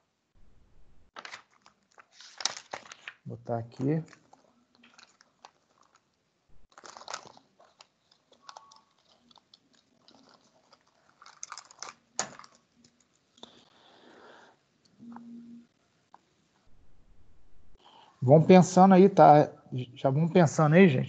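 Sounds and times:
small objects clicking and rustling: 0:01.1 - 0:13.6.

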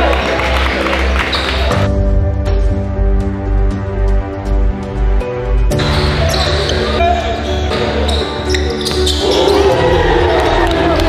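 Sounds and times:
shouting and cheering: 0:00.0 - 0:01.8, 0:08.9 - 0:11.0
background music: 0:00.0 - 0:11.0.

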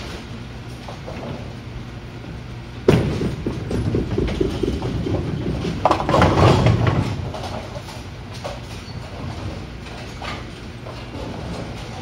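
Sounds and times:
bowling ball rolling: 0:02.8 - 0:10.2.

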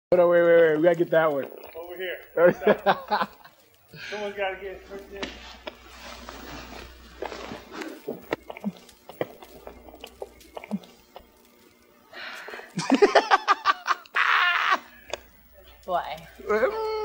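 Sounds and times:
person laughing: 0:02.4 - 0:03.5, 0:12.8 - 0:15.1
soft breathing: 0:03.8 - 0:04.6, 0:05.4 - 0:09.0, 0:12.0 - 0:12.8.

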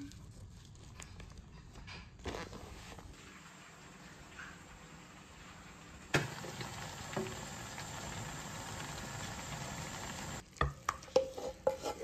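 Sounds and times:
tofu sizzling in a frying pan: 0:04.8 - 0:10.4.

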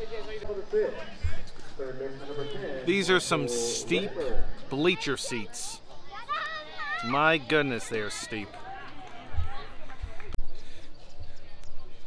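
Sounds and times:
faint crowd voices: 0:00.0 - 0:12.0.

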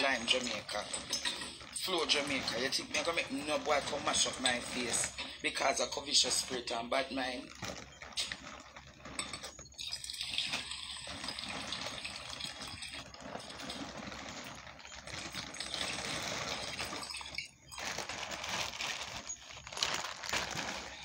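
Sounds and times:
water running: 0:00.0 - 0:07.4, 0:09.2 - 0:17.8.

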